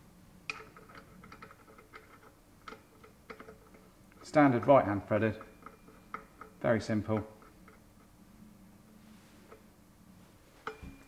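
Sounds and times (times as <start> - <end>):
metal parts clicking: 0.5 - 7.9.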